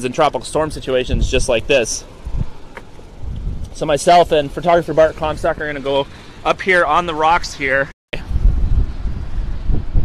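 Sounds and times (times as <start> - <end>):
wind buffeting microphone: 0.5 - 6.8, 8.2 - 10.0.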